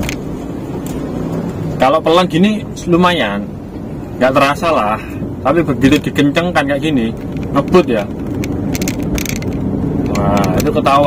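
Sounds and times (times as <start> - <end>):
car road rumble: 0.0 - 11.0
suspension thudding over joints: 5.9 - 11.0.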